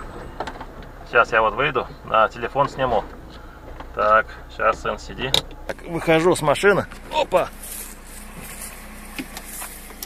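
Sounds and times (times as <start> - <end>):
car engine idling: 0.0 - 10.0
footsteps through dry grass: 7.4 - 10.0.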